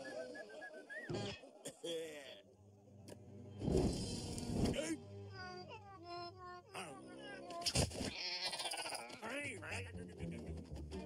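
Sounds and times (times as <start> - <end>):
squeaky cartoon vocalizations: 5.8 - 9.2.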